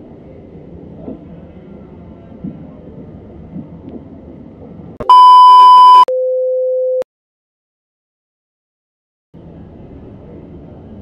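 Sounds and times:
loud distorted electronic beep: 0:05.0 - 0:06.1
noisy room sound: 0:09.4 - 0:11.0.

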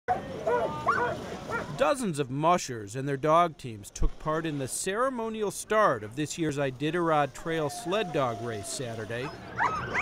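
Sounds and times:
dogs barking: 0:00.1 - 0:01.8, 0:09.2 - 0:10.0.

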